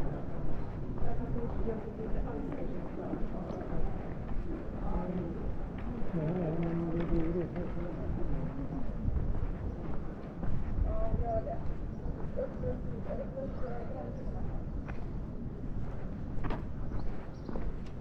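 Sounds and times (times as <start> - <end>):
people talking indistinctly: 0.0 - 16.0
footsteps: 0.0 - 18.0.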